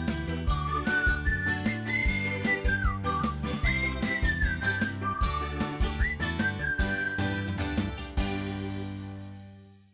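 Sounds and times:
whistled melody: 0:00.0 - 0:08.2.

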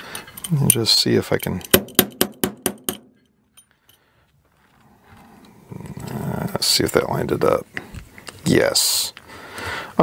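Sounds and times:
metal-on-metal taps: 0:00.2 - 0:03.7.

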